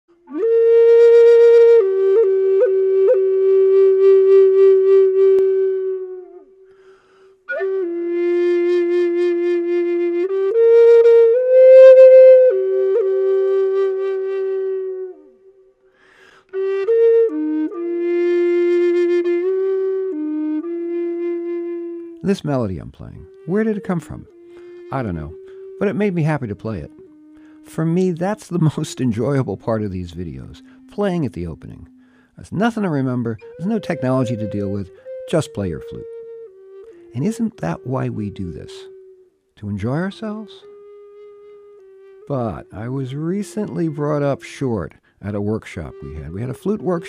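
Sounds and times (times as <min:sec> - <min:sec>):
flute playing slow melody: 0:00.1 - 0:47.0.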